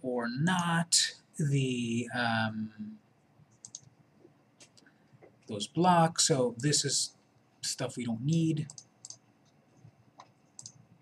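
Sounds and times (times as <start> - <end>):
computer mouse clicks: 3.6 - 4.0, 8.7 - 10.9.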